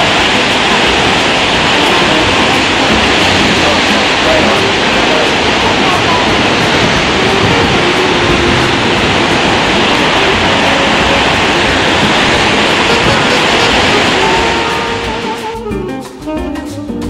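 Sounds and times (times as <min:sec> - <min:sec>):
heavy ocean surf breaking: 0:00.0 - 0:16.2.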